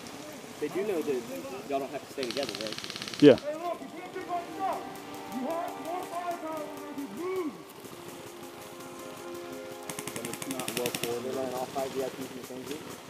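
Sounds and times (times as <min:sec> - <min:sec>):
indistinct voices talking: 0:00.7 - 0:13.0
airsoft gun rapid clicks: 0:02.2 - 0:03.6, 0:04.8 - 0:11.3.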